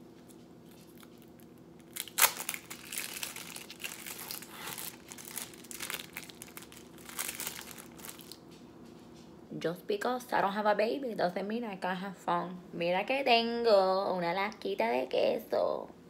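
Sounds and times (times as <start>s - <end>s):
plastic wrapper crinkling: 0.3s - 8.5s.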